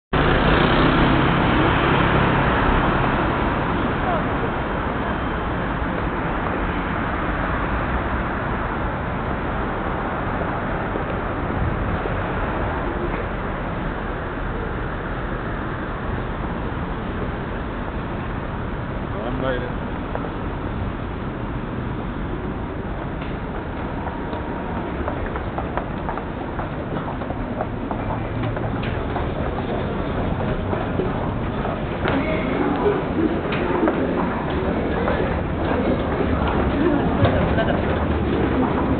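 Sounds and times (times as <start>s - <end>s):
city road traffic: 0.1s - 38.9s
footsteps on hard walkway: 22.8s - 38.9s.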